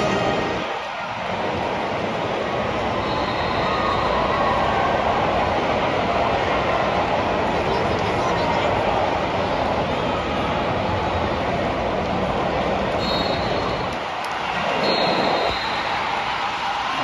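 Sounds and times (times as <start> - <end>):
stadium crowd hubbub: 0.0 - 17.0.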